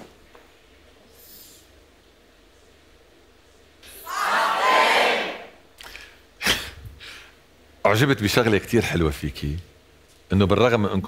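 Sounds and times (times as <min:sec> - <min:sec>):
audience cheering and shouting: 0:03.9 - 0:05.5.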